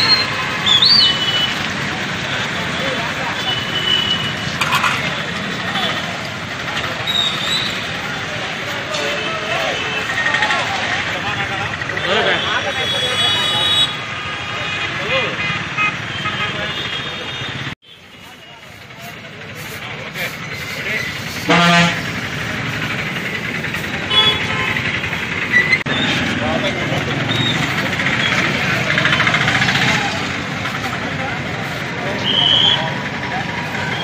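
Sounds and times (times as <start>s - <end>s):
crowd chatter: 0.0s - 34.0s
vehicle horn toot: 3.3s - 4.5s, 12.0s - 18.1s, 21.5s - 22.1s, 24.0s - 24.8s.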